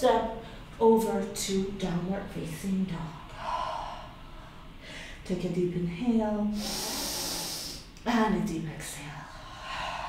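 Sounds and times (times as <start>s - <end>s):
woman exhaling through the mouth: 6.6s - 7.9s.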